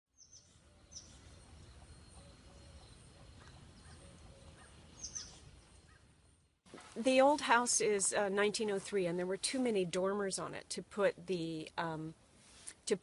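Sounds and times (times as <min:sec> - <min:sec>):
high bird chirps: 0:00.2 - 0:06.0
faint outdoor ambience: 0:00.2 - 0:13.0.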